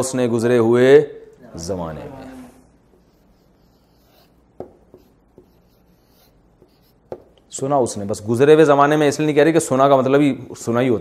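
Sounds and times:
marker pen strokes on paper: 2.8 - 7.4
sharp marker taps: 2.9 - 7.5.

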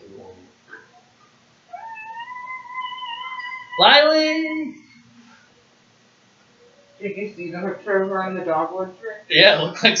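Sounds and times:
pet animal crying: 1.7 - 4.8.

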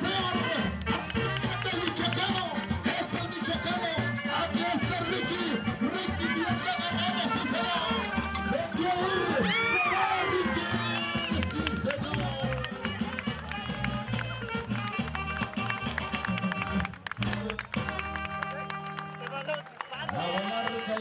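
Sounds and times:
live band music with bouncing bass: 0.0 - 19.3.

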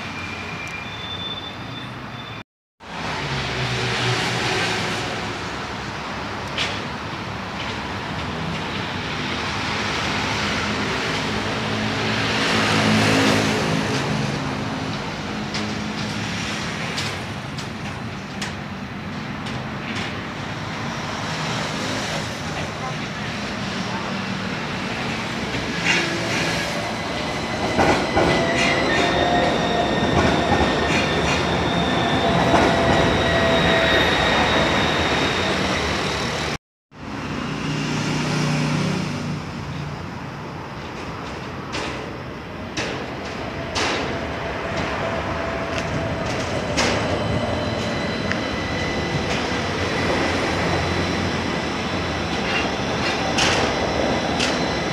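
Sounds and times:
tram rolling on tracks: 2.9 - 54.9.

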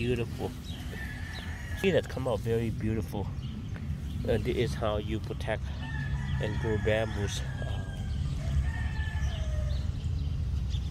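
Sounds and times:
low microphone rumble: 0.0 - 10.9
distant rooster-like bird calls: 0.1 - 3.5, 4.7 - 10.9.

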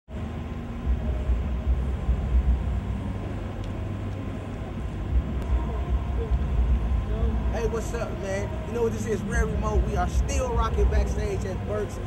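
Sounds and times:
low urban rumble: 0.1 - 12.0.

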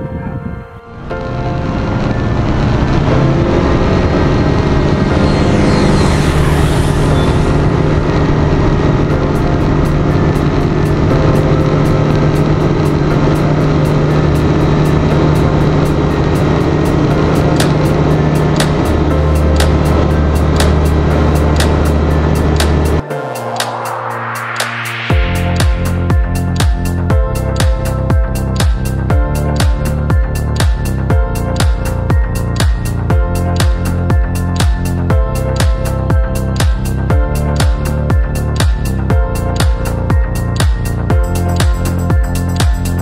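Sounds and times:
propeller plane engine droning: 0.9 - 23.0.

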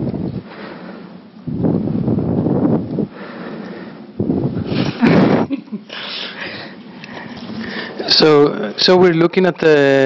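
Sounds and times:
rustling blowing on microphone: 0.0 - 0.6, 1.4 - 8.2.

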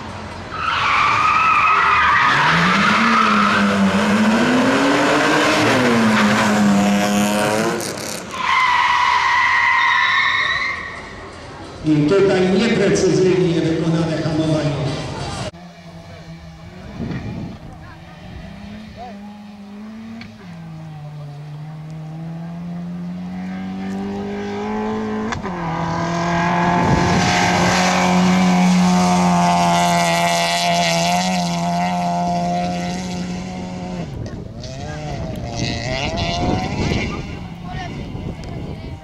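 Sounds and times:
rally car engine accelerating: 2.0 - 8.7, 11.8 - 39.0.

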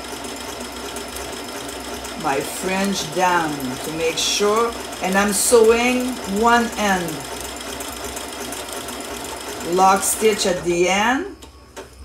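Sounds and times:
sewing machine running: 0.0 - 12.0.

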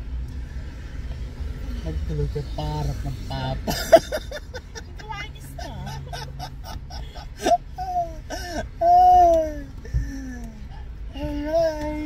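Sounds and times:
road rumble: 0.0 - 12.0
people laughing: 3.7 - 8.7.

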